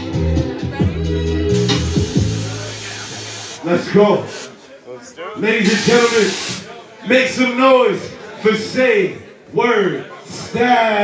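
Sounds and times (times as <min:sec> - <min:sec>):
sampler beat: 0:00.0 - 0:03.4
man speaking over sound system: 0:02.3 - 0:11.0.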